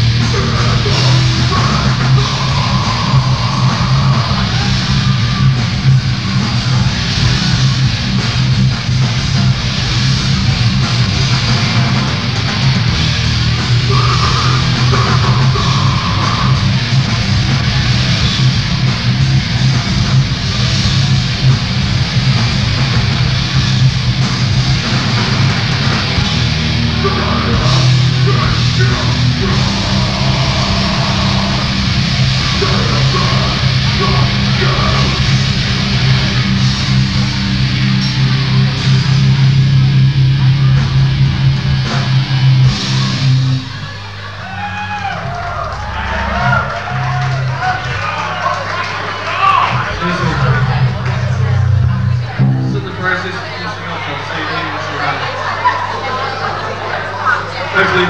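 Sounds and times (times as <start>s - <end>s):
grindcore band playing live: 0.0s - 58.0s.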